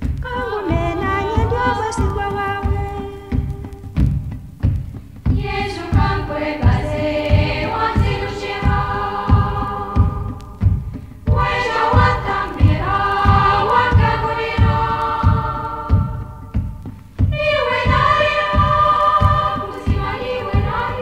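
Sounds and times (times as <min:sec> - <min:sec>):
low drum beat: 0:00.0 - 0:21.0
choir singing a hymn: 0:05.3 - 0:21.0.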